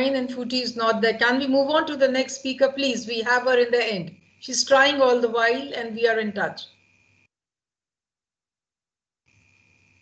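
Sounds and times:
thin high whine: 0:00.0 - 0:07.4, 0:09.2 - 0:10.0.

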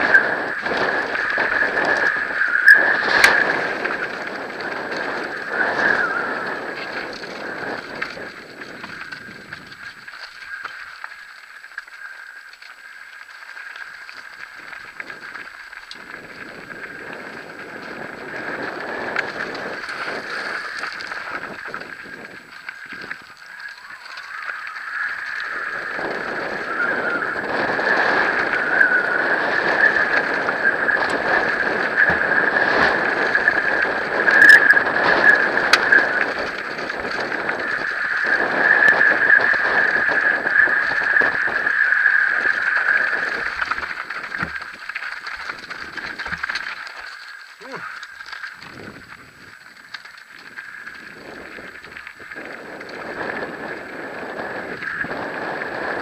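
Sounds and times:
bike tyres rumbling over gravel: 0:00.0 - 0:56.0
wind: 0:00.0 - 0:56.0.

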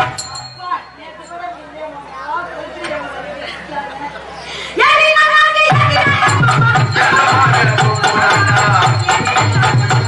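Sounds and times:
chatter of voices: 0:00.0 - 0:10.0
stage music with held note: 0:05.6 - 0:10.0.

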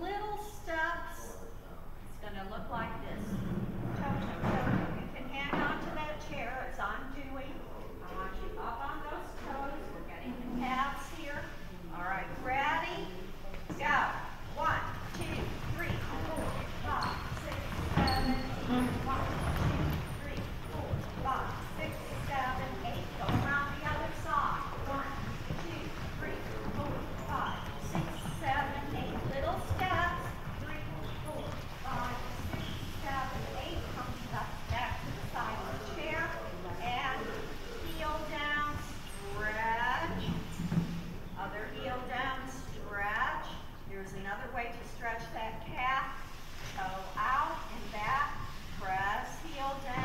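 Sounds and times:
woman speaking: 0:00.0 - 0:01.3, 0:02.1 - 0:03.4, 0:04.0 - 0:40.4, 0:41.4 - 0:46.2, 0:46.8 - 0:50.0
footsteps on hardwood floor: 0:14.6 - 0:39.4.

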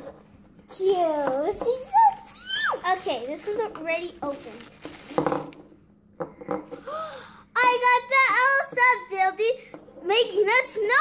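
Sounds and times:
foil wrapper rustling: 0:01.8 - 0:05.6.

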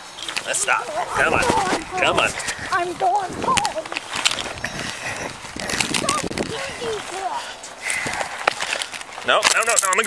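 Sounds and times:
clothing rubbing against microphone: 0:00.2 - 0:09.4
scuffing footsteps: 0:01.3 - 0:09.6.

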